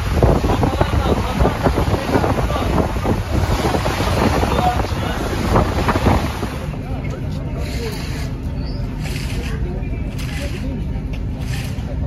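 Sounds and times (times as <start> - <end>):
rush of boat wake: 0.0 - 12.0
wind buffeting microphone: 0.0 - 12.0.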